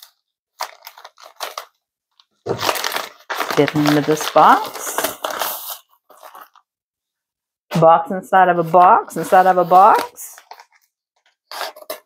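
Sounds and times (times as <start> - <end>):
plastic mailer crinkling: 0.0 - 6.6, 9.2 - 12.0.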